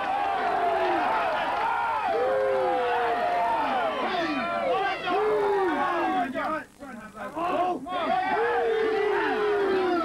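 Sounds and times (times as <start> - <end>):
crowd shouting and cheering: 0.0 - 6.6, 7.4 - 10.0.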